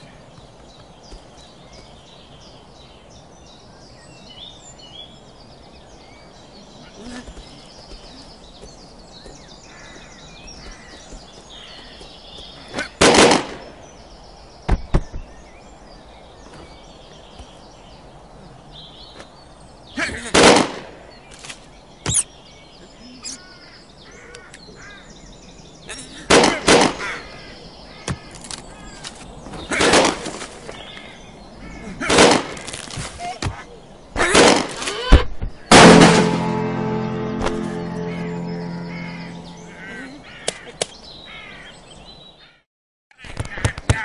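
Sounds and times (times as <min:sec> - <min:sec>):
birds chirping: 0:00.0 - 0:44.0
crows cawing: 0:09.6 - 0:13.0, 0:23.3 - 0:25.2, 0:26.9 - 0:29.0, 0:30.9 - 0:32.1, 0:38.0 - 0:41.8, 0:42.4 - 0:42.6
cartoon pistol shots: 0:20.3 - 0:20.8, 0:35.7 - 0:36.8
music: 0:35.8 - 0:39.9.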